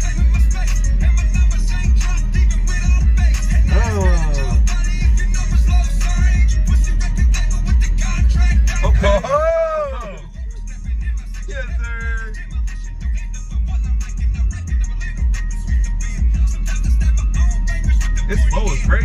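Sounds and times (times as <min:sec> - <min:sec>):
heavy bass beat: 0:00.0 - 0:19.0
person rapping: 0:00.0 - 0:19.0.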